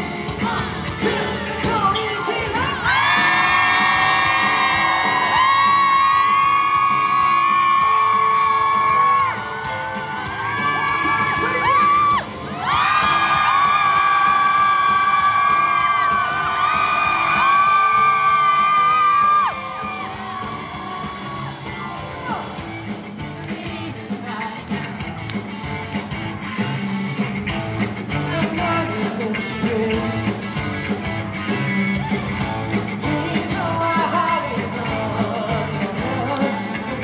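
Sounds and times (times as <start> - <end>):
pop-rock band playing live: 0.0 - 37.0.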